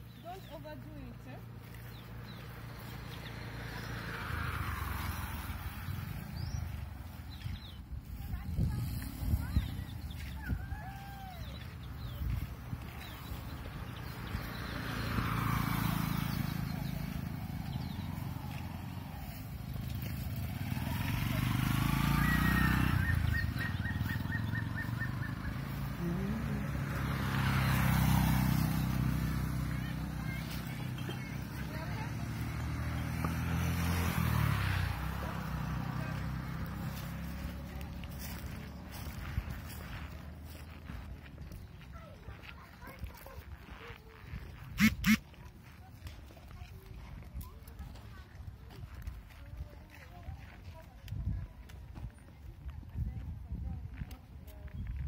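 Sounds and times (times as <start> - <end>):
motorcycles passing: 0.0 - 55.0.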